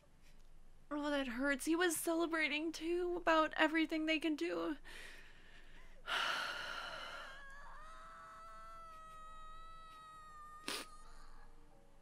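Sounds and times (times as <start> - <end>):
woman sighing: 6.1 - 8.0.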